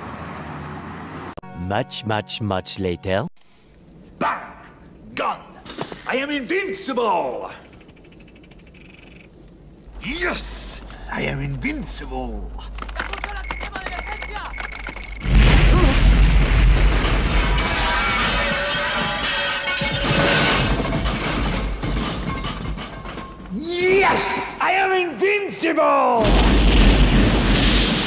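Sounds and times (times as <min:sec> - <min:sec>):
explosion: 0:15.2 - 0:18.6, 0:26.2 - 0:28.0
crashing debris: 0:15.2 - 0:23.5
sharp clatters and knocks: 0:16.7 - 0:23.5.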